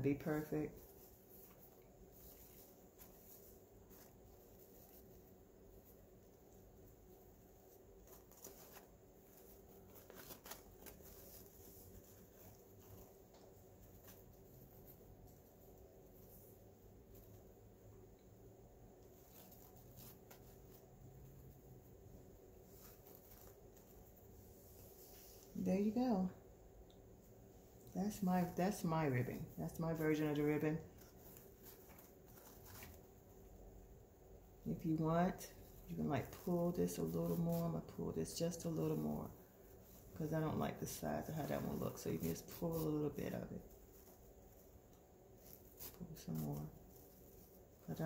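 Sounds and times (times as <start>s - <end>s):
ribbon rustling and crinkling: 0.0s - 18.2s, 18.9s - 26.3s, 27.3s - 33.8s, 34.6s - 48.0s
low steady hum: 0.0s - 48.0s.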